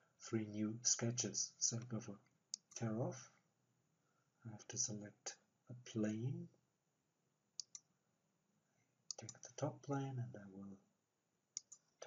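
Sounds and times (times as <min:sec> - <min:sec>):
computer mouse clicks: 0:02.5 - 0:02.9, 0:07.6 - 0:07.9, 0:09.1 - 0:09.5, 0:11.6 - 0:11.9.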